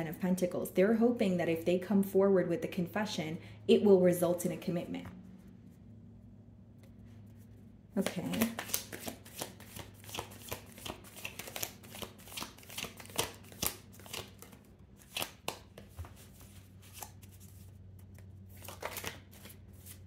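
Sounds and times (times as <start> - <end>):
cards being shuffled: 7.1 - 20.0.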